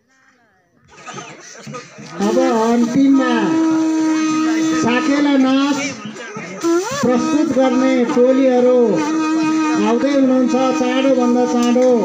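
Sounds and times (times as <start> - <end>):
wavering held note of folk instrument: 2.2 - 12.0.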